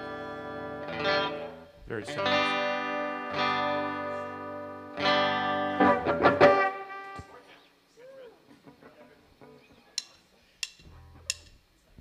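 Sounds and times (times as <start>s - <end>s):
drumstick count-in clicks: 9.9s - 11.5s.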